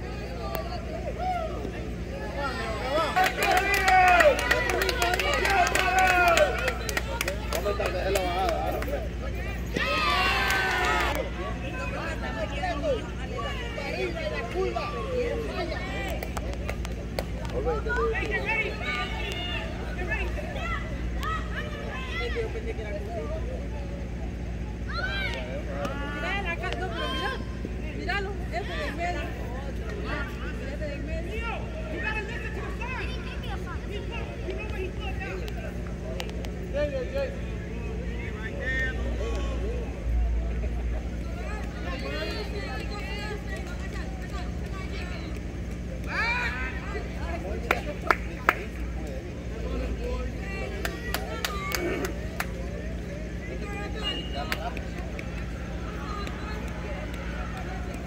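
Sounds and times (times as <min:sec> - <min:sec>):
low steady hum: 0:00.0 - 0:58.0
people talking and calling out: 0:00.0 - 0:58.0
people shouting: 0:01.0 - 0:06.8, 0:09.6 - 0:11.4, 0:46.1 - 0:47.0.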